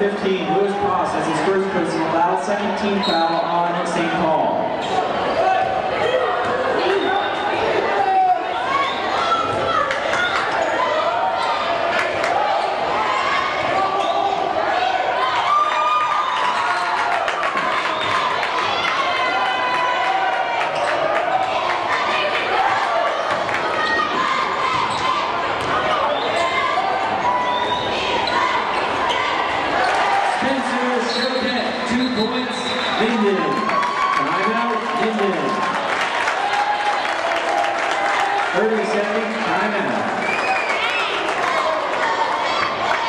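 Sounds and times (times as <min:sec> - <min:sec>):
crowd voices and shouts: 0:00.0 - 0:43.0.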